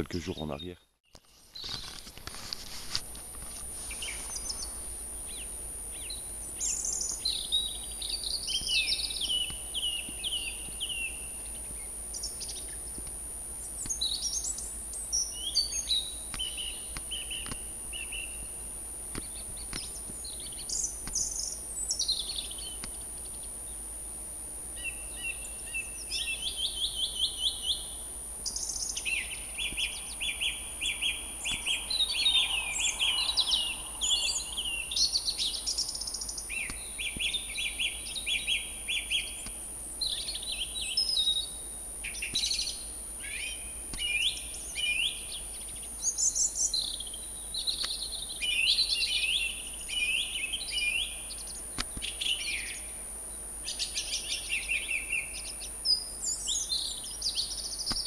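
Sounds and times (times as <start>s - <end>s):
song thrush singing: 3.7s - 58.0s.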